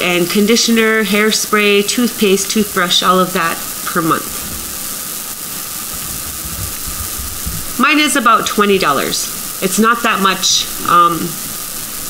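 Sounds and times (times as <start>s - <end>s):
background hiss: 0.0s - 12.0s
faint low rumbles: 2.0s - 12.0s.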